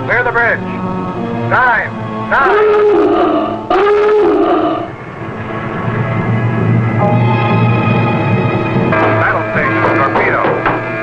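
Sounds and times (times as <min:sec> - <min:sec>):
low rumble: 0:04.5 - 0:10.1
diving alarm klaxon: 0:06.8 - 0:11.0.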